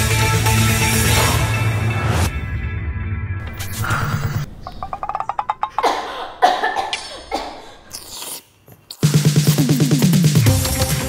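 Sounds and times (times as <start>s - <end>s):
person coughing: 5.7s - 8.0s.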